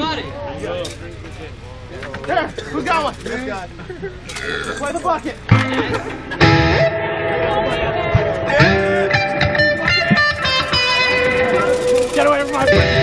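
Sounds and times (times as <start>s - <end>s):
electric guitar playing: 5.5s - 13.0s
voices shouting: 6.8s - 13.0s.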